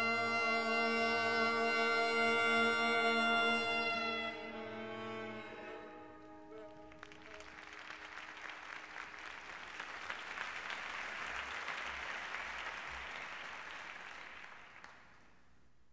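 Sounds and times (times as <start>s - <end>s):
audience applauding: 6.6s - 15.4s.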